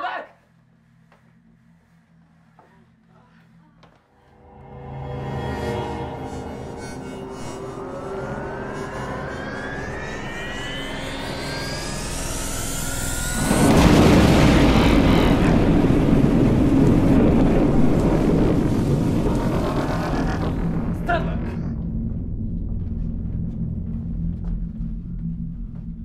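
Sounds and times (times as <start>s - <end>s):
rising whine sound effect: 4.3s - 26.0s
loud noisy rush: 9.6s - 21.3s.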